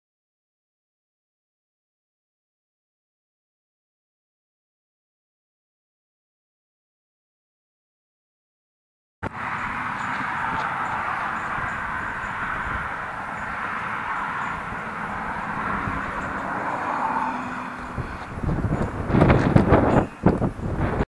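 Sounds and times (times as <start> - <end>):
towed trailer rumbling and rattling: 9.2 - 21.0.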